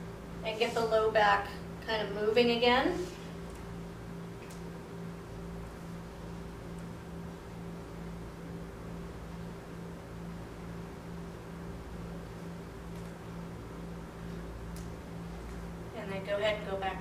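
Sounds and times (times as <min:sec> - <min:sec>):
fan humming with faint hiss: 0:00.0 - 0:17.0.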